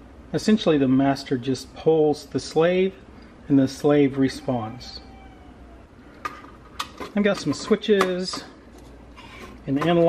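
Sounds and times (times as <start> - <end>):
faint high tone: 4.2 - 5.9.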